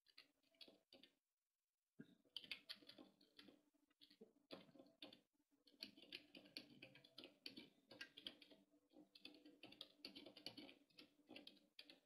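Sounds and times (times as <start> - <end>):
typing on computer keyboard: 0.0 - 1.2, 2.3 - 12.0.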